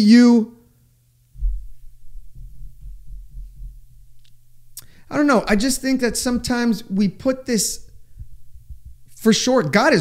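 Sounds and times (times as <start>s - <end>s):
steady low hum: 0.0s - 10.0s
irregular low thudding: 1.4s - 7.1s, 7.8s - 9.2s.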